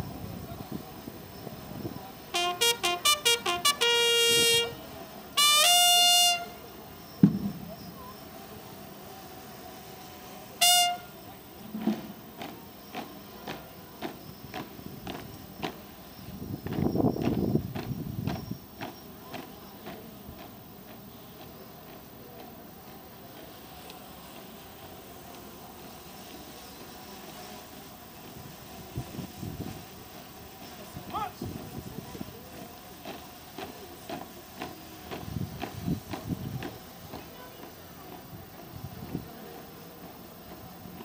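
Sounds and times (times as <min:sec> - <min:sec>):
bugle call: 0:02.3 - 0:06.8, 0:10.6 - 0:11.3.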